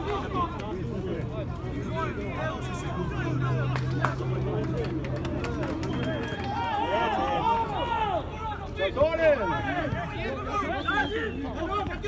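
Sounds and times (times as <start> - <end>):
people shouting: 6.1 - 12.0.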